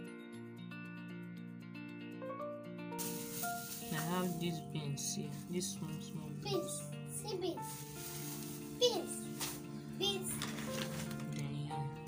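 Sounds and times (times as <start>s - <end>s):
background music with held notes: 0.0s - 12.0s
plastic bag rustling: 3.0s - 4.6s, 7.5s - 11.4s.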